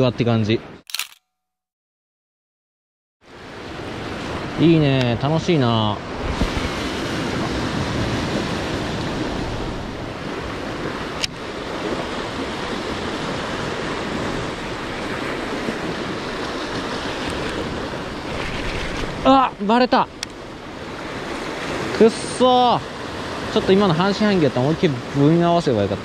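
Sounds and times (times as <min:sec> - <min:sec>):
sharp click: 0:00.9 - 0:01.4
waves washing on rocky shore: 0:03.4 - 0:26.0
wind buffeting microphone: 0:06.0 - 0:22.1.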